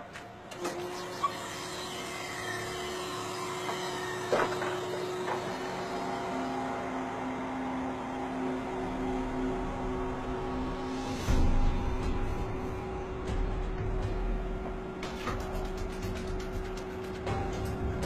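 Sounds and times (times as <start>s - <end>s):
crane engine hum: 0.0s - 18.0s
whining hydraulic tones: 0.5s - 15.4s.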